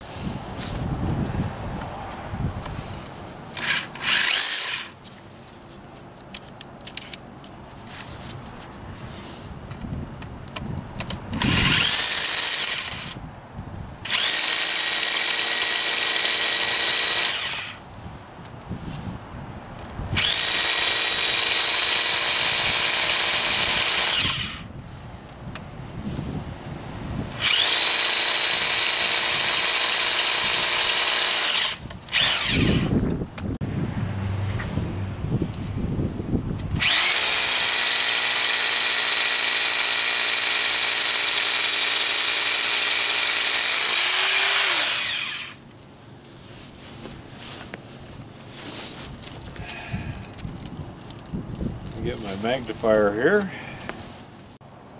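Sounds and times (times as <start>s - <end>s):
hammer drill boring into rock: 3.6s - 5.0s, 11.4s - 13.2s, 14.1s - 17.8s, 20.2s - 24.7s, 27.4s - 33.0s, 36.8s - 45.6s.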